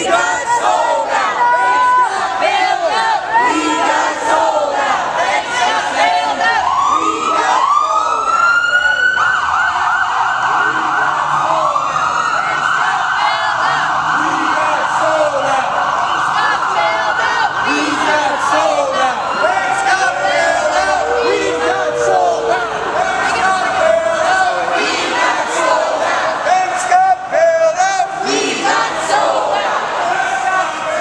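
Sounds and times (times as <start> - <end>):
police siren wailing: 0.0 - 27.8
crowd shouting: 0.0 - 31.0.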